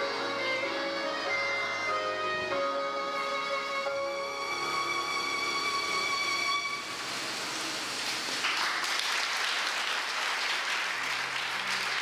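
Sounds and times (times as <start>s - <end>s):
violin playing slow melody: 0.0s - 7.1s.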